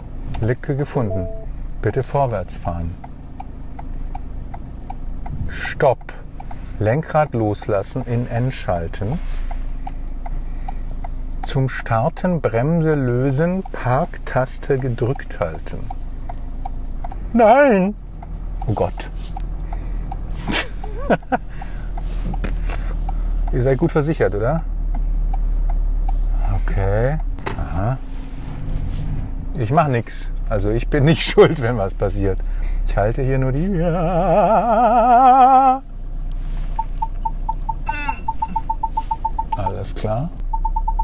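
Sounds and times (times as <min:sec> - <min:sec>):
car hum: 0:00.0 - 0:41.0
parking sensor beeping: 0:00.8 - 0:01.6, 0:36.7 - 0:41.0
man laughing nervously: 0:20.5 - 0:21.7.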